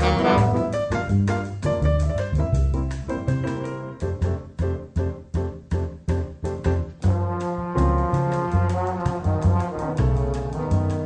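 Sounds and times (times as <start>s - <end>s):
trombone: 0.0s - 1.9s, 7.0s - 11.0s
bossa nova jazz: 0.0s - 11.0s
plucked bass: 0.0s - 11.0s.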